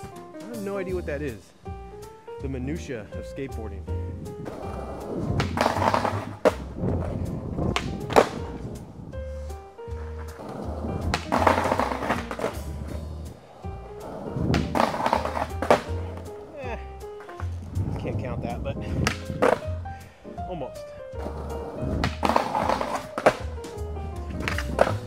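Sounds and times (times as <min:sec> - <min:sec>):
background music with bass: 0:00.0 - 0:25.0
skateboard wheels rolling on concrete: 0:02.8 - 0:20.1, 0:21.1 - 0:25.0
skateboard hitting concrete curb: 0:04.4 - 0:08.6, 0:10.0 - 0:13.1, 0:14.0 - 0:16.5, 0:19.0 - 0:19.7, 0:21.2 - 0:25.0
skateboard pops and landings: 0:04.5 - 0:08.6, 0:10.3 - 0:13.0, 0:14.4 - 0:16.0, 0:19.0 - 0:19.7, 0:21.2 - 0:25.0.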